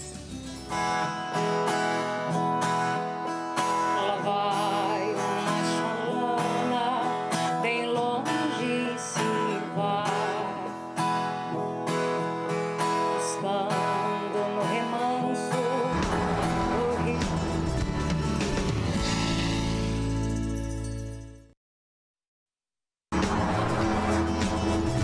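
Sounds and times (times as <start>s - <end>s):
acoustic guitar strumming: 0.0s - 20.8s, 23.1s - 25.0s
person singing: 3.8s - 10.8s, 13.2s - 17.6s
theme music with deep bass: 16.0s - 20.8s, 23.2s - 25.0s.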